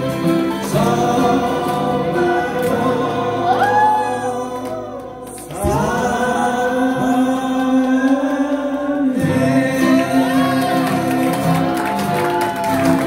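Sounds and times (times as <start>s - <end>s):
acoustic guitars: 0.0s - 13.0s
group singing: 0.0s - 13.0s.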